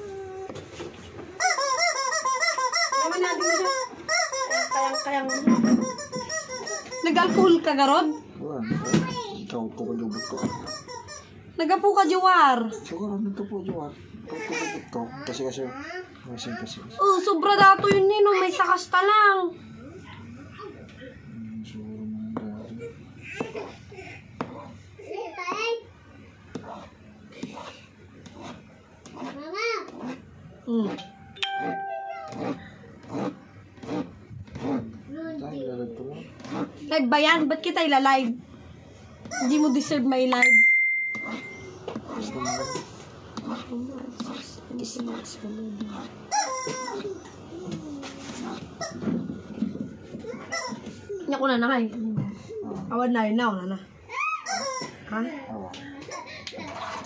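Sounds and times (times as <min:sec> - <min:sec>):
steady ringing tone: 0:31.0 - 0:32.9, 0:40.4 - 0:41.8.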